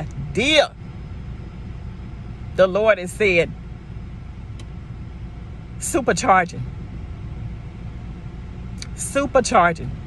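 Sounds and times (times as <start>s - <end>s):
low rumble inside car cabin: 0.0s - 10.0s.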